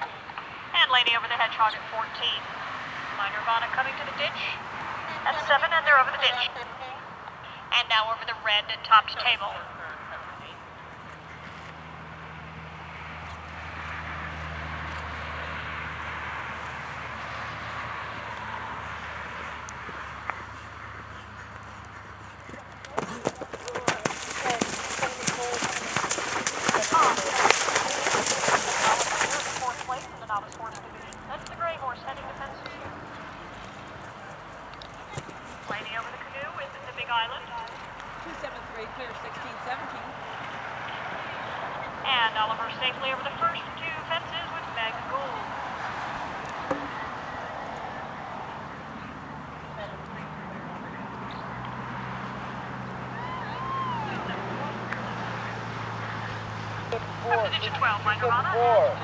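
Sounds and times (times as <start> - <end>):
background noise: 0.0 - 59.0
hooves splashing in water: 10.8 - 32.1
hoofbeats: 18.0 - 31.6
faint voices: 19.3 - 45.6, 46.5 - 59.0.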